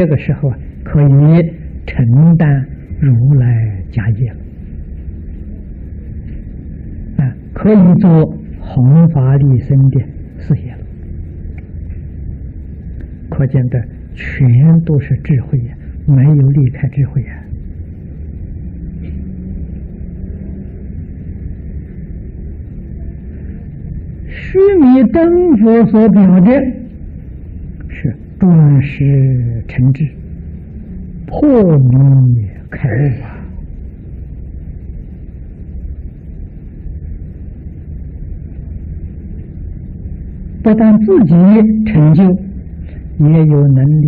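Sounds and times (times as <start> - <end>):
low rumble and hum: 0.0 - 44.0.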